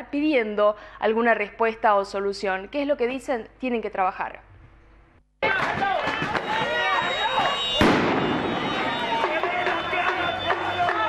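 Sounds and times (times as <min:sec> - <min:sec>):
crowd shouting: 0:05.4 - 0:11.0
loud sharp bang: 0:07.8 - 0:09.8.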